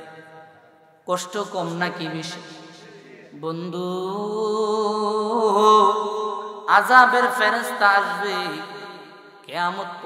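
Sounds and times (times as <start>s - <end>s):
man chanting through microphone: 0.0s - 8.6s.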